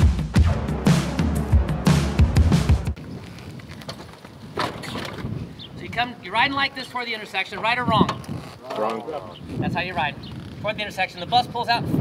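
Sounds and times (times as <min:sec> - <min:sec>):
wind buffeting microphone: 0:03.0 - 0:06.8, 0:07.5 - 0:12.0.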